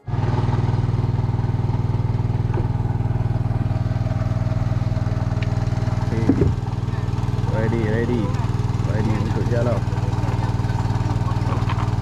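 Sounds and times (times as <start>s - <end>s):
small boat engine running: 0.0s - 12.0s.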